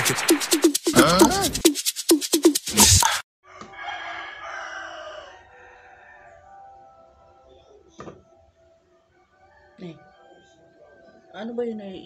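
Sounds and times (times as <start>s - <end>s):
music with quick beat: 0.0s - 3.2s
rooster crowing: 3.4s - 6.6s.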